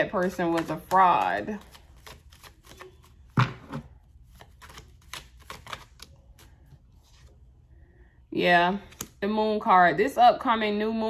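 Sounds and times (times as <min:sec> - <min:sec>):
cards being shuffled: 0:00.0 - 0:07.3, 0:08.8 - 0:09.2.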